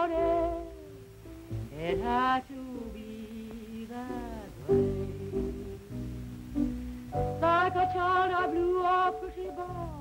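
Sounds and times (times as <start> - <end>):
woman singing: 0.0 - 1.0, 1.6 - 6.3, 7.3 - 10.0.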